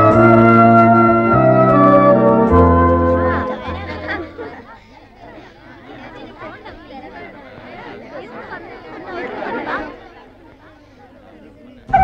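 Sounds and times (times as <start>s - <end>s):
organ held chord: 0.0s - 4.6s
crowd chattering: 0.0s - 12.0s.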